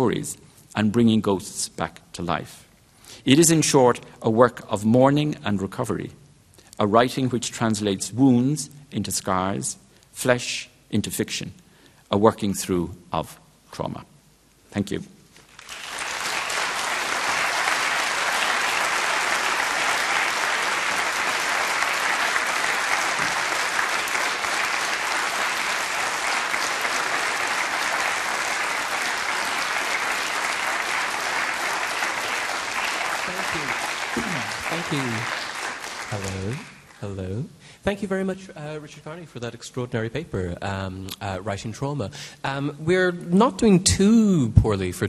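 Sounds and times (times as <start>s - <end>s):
audience applauding: 15.5s - 37.0s
man speaking: 33.2s - 35.4s, 36.1s - 45.0s.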